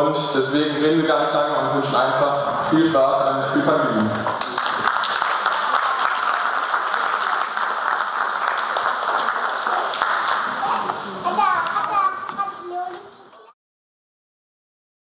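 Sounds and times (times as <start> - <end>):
audience applauding: 4.1 - 11.0
children's voices: 9.6 - 13.6.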